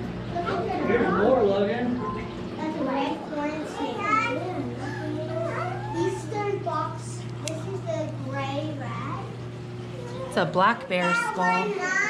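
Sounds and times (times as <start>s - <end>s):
steady low hum: 0.0s - 12.0s
children chattering: 2.6s - 12.0s.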